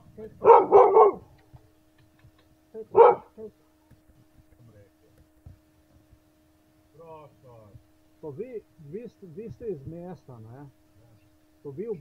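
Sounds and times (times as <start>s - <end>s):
low electrical hum: 0.0s - 12.0s
dog barking: 0.4s - 1.3s, 2.9s - 3.4s.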